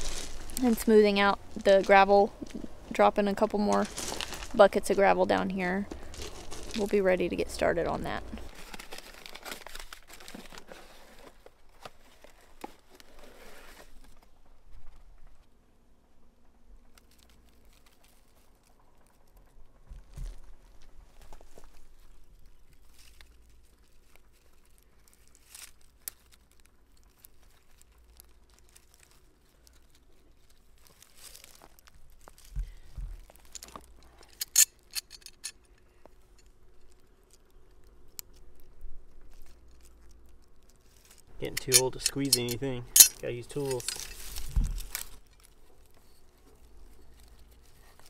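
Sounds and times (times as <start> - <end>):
rustling of leaves and gravel: 0.0 - 48.0.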